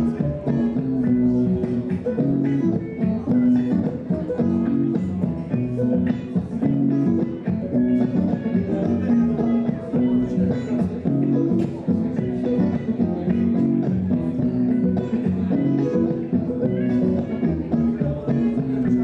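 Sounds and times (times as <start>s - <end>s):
looped plucked guitar: 0.0s - 19.0s.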